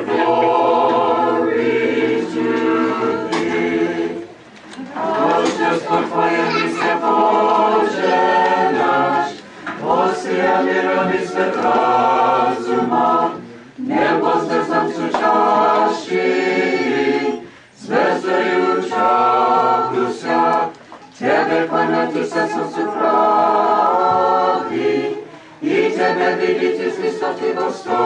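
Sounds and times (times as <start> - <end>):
small choir singing a cappella: 0.0 - 28.0
singers breathing: 9.4 - 9.8, 17.4 - 17.8, 25.2 - 25.6.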